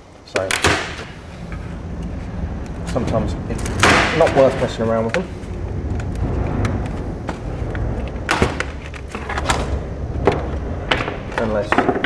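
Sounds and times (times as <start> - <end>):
low rumble: 1.0 - 12.0.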